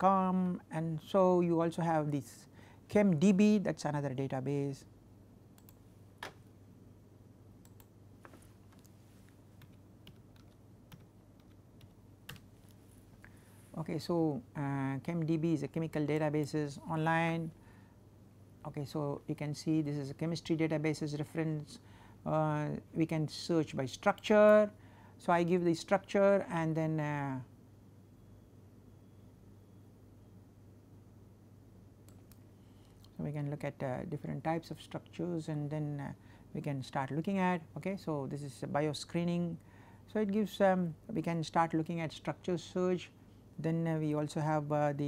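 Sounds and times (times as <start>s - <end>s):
steady low hum: 0.0s - 45.0s
computer mouse clicks: 5.6s - 6.4s, 7.6s - 8.9s, 32.0s - 33.2s
typing on computer keyboard: 9.6s - 12.4s.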